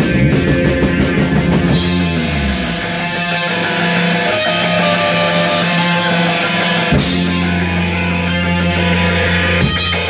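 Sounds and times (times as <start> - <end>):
drums: 0.0 - 10.0
electric guitar through amp: 0.0 - 10.0.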